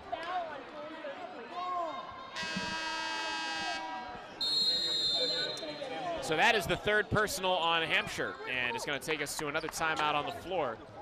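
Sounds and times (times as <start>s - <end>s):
crowd murmur and voices: 0.0s - 11.0s
arena horn blast: 2.4s - 3.9s.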